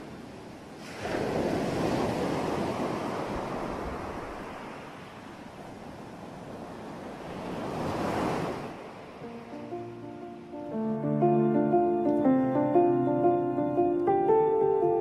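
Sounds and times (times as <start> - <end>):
ocean waves breaking on beach: 0.0 - 10.8.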